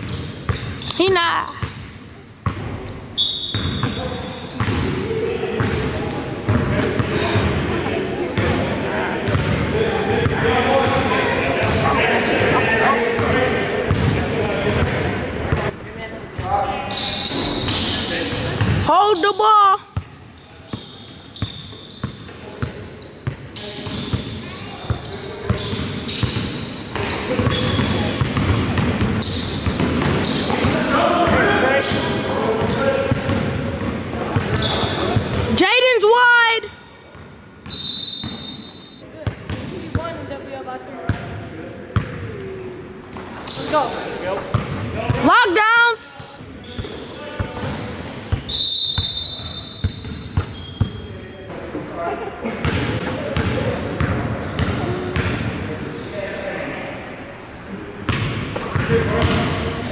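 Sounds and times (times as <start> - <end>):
shoe squeals: 0.0 - 1.7, 2.7 - 7.6, 9.7 - 11.9, 14.4 - 15.0, 15.6 - 35.4, 37.6 - 39.1, 43.0 - 45.3, 46.1 - 51.4.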